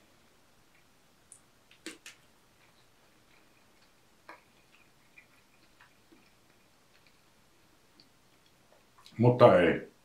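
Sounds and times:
mouth clicks while chewing: 0.8s - 7.2s.

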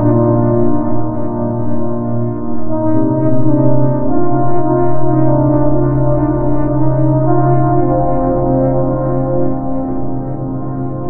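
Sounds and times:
dark ambient drone music: 0.0s - 11.0s.

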